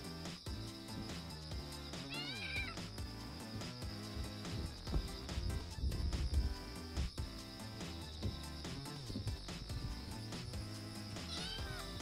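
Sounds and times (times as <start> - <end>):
background music: 0.0 - 12.0
kitten meowing: 2.1 - 2.8, 11.3 - 12.0.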